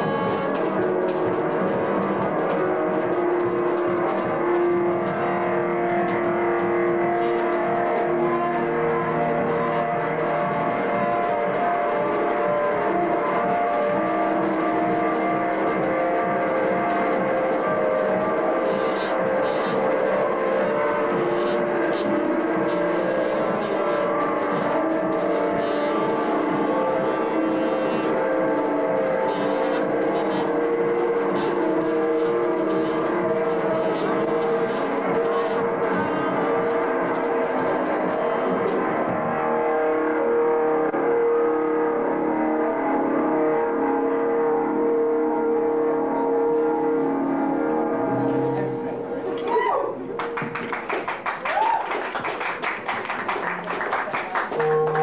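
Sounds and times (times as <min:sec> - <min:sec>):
trumpet holding long notes: 0:00.0 - 0:49.4
rock band sustained drone: 0:00.0 - 0:55.0.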